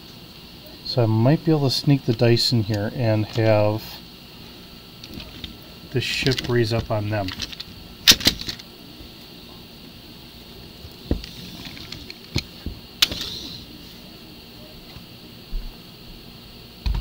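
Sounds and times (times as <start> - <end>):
plastic bricks clicking: 6.2 - 8.7.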